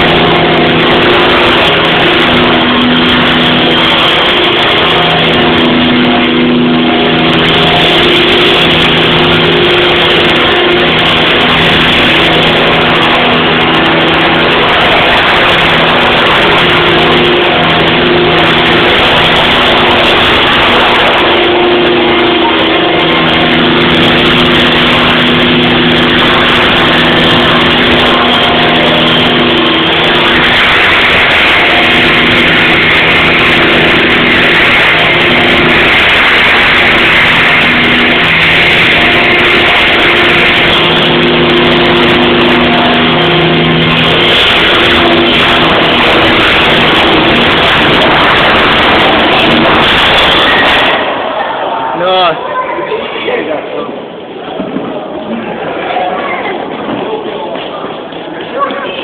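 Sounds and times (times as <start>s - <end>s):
radio-controlled helicopter flying: 0.0s - 59.0s.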